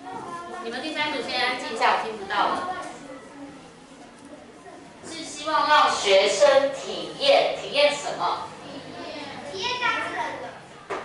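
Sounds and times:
child speaking: 0.0s - 1.7s, 2.3s - 10.6s.

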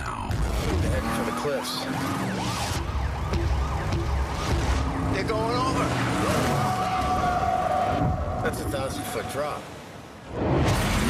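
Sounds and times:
police sirens wailing: 0.0s - 9.9s.

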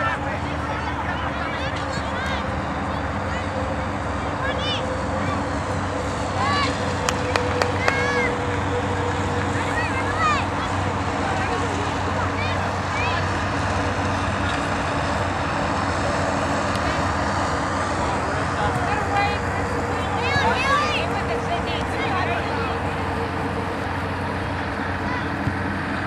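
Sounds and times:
players and spectators shouting: 0.0s - 26.0s.

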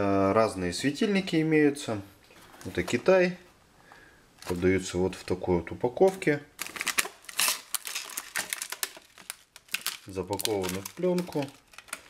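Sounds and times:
plastic film wrapping crinkling: 4.4s - 5.0s, 6.6s - 12.0s.

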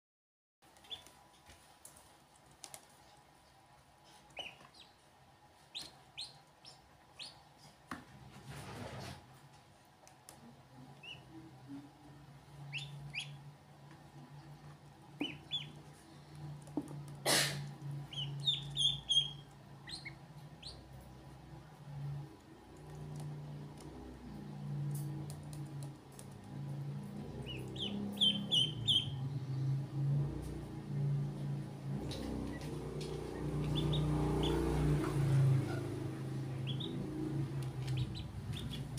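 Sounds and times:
low steady hum: 0.6s - 38.9s
ducklings peeping: 0.7s - 1.2s, 4.2s - 7.8s, 10.8s - 11.8s, 12.4s - 21.4s, 25.1s - 29.6s, 31.9s - 38.9s.

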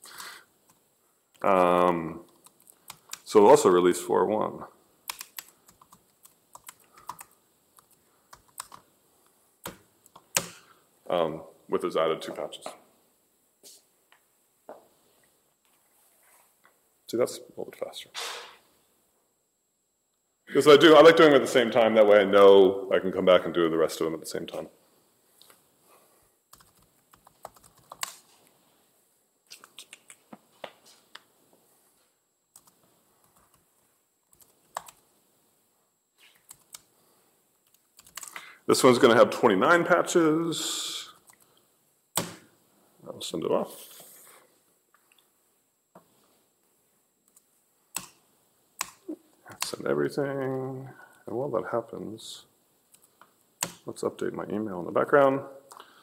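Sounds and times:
laptop keyboard typing: 2.3s - 3.2s, 5.1s - 8.8s, 9.6s - 10.6s, 26.5s - 28.2s, 32.6s - 33.6s, 34.3s - 35.0s, 36.4s - 36.9s, 37.6s - 38.4s, 47.3s - 48.2s.

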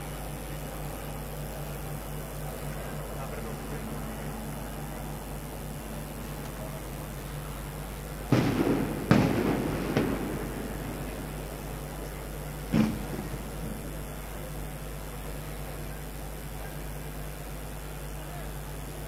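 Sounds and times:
loud echoing blasts: 2.0s - 15.3s.

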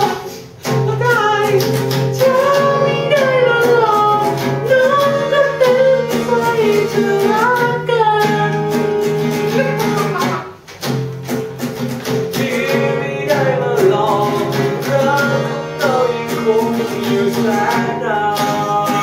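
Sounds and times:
person singing: 0.0s - 10.6s, 12.3s - 19.0s
acoustic guitars strummed: 0.0s - 19.0s.

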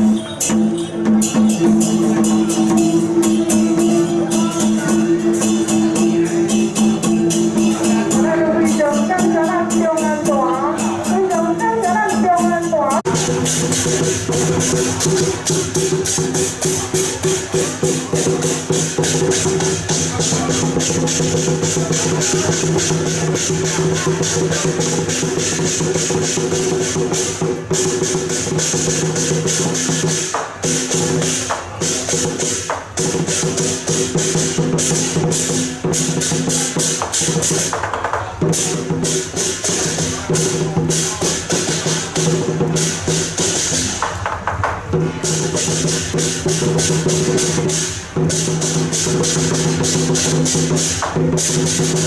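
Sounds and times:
drum and cymbal strikes: 0.0s - 52.0s.

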